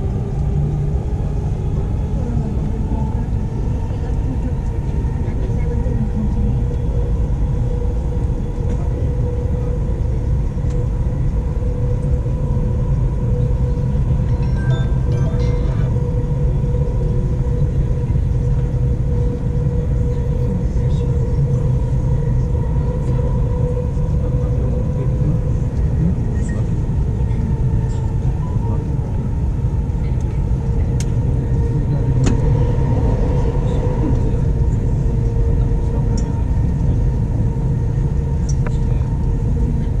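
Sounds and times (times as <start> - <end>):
constant whine: 0.0 - 40.0
train rumbling on track: 0.0 - 40.0.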